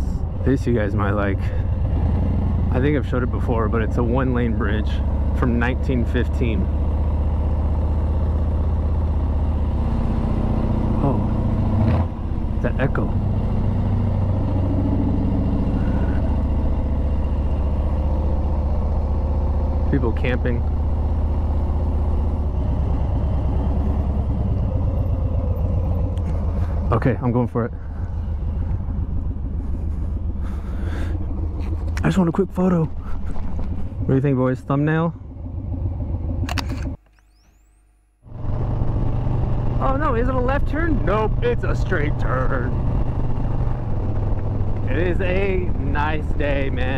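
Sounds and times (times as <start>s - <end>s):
motorcycle engine running at low speed: 0.0s - 46.9s.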